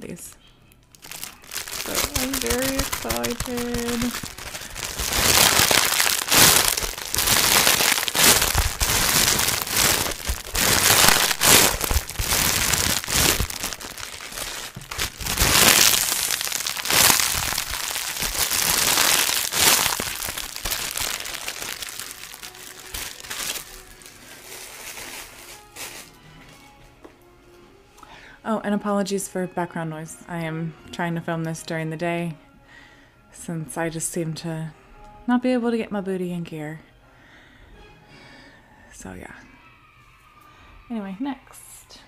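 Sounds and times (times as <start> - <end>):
plastic wrapping crinkling: 0.9 - 26.2.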